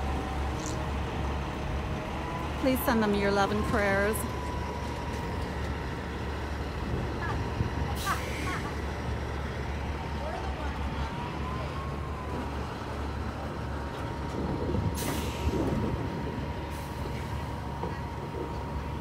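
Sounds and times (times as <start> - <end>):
truck engine droning: 0.0 - 19.0
air brake hiss: 15.0 - 15.6.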